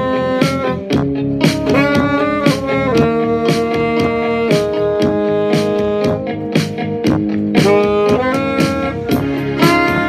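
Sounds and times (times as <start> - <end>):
karaoke backing track with drums: 0.0 - 10.0
saxophone melody: 0.0 - 10.0.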